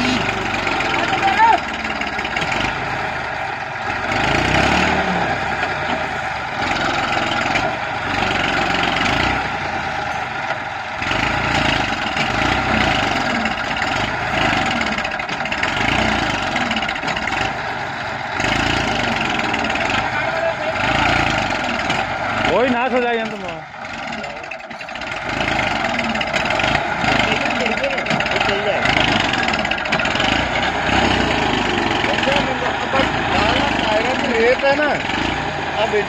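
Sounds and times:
tractor diesel engine labouring: 0.0s - 36.0s.

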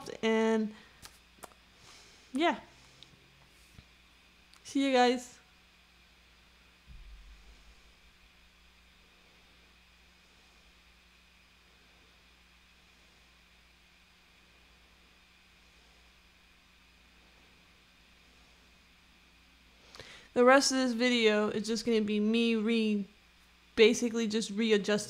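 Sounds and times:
faint room hiss and hum: 0.0s - 25.0s
low thump: 6.8s - 7.8s.

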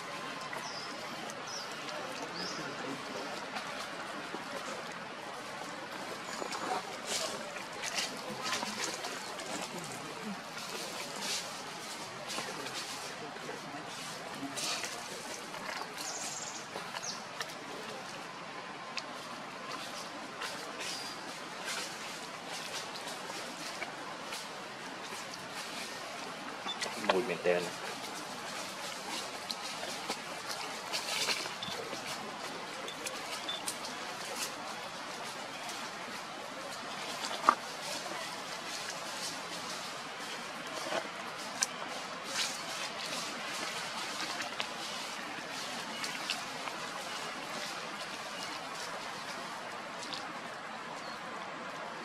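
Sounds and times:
steady background hiss: 0.0s - 52.0s.

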